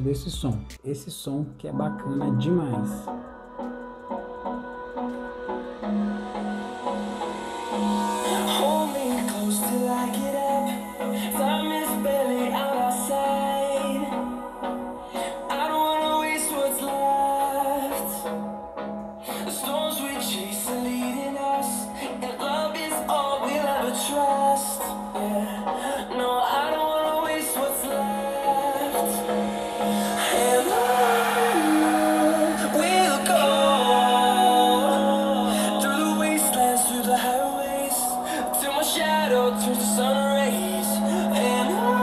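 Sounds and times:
person singing: 1.6s - 18.5s, 19.2s - 42.0s
electronic dance music on laptop speakers: 1.8s - 42.0s.

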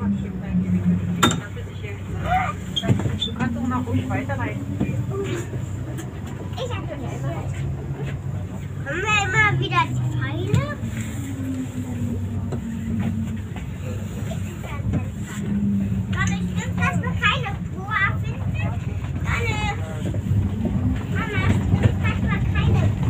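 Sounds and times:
passengers talking: 0.0s - 23.0s
tram running hum: 0.0s - 23.0s.

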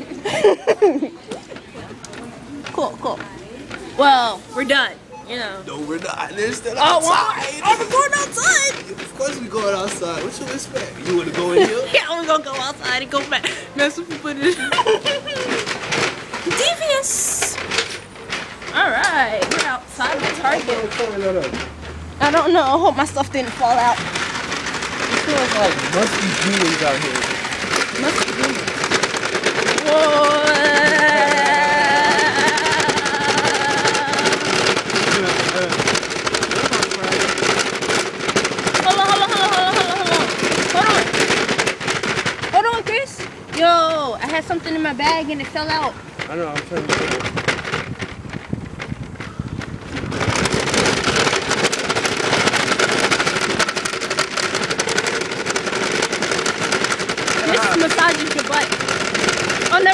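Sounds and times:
shopping cart wheels rattling: 0.0s - 59.9s
person crying whoa: 30.0s - 34.4s.

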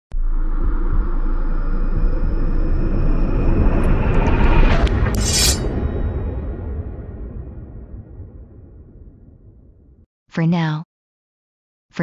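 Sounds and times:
low rumble with high whine: 0.1s - 10.0s.

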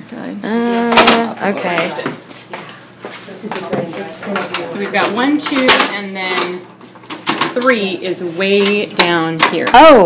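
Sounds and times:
plastic parts clicking and knocking: 3.6s - 6.5s.

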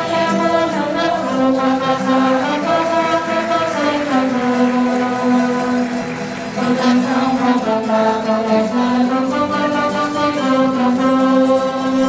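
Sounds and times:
band of saxophones trumpets guitars: 0.0s - 12.0s.

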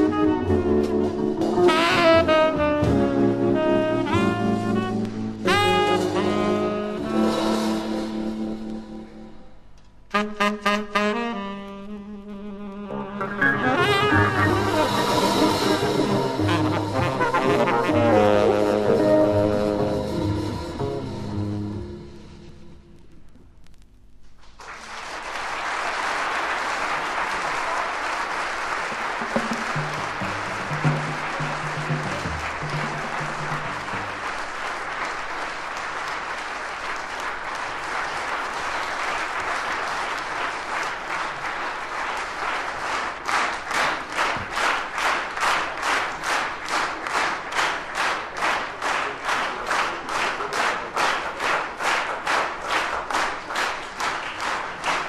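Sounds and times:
low musical notes: 0.0s - 24.0s, 29.2s - 34.5s
audience applauding: 13.2s - 18.9s, 24.4s - 55.0s
rhythmic clapping in unison: 24.3s - 55.0s.

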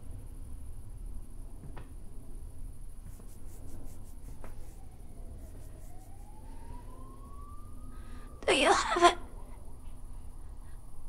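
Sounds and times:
low steady rumble: 0.0s - 11.0s
faint siren wailing: 3.8s - 11.0s.

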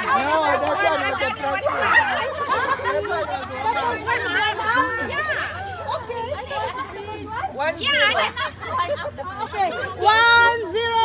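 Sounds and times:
women chattering: 0.0s - 11.0s.

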